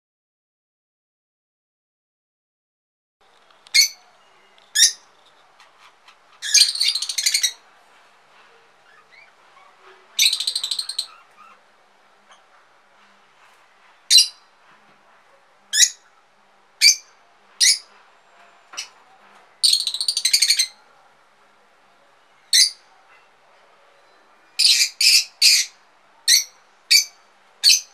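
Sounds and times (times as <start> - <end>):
parrot shrill calls: 3.7 - 4.0, 4.7 - 5.1, 6.4 - 7.6, 8.8 - 11.6, 22.5 - 22.9, 24.6 - 27.9
parrot chattering: 5.6 - 7.6, 8.8 - 11.7.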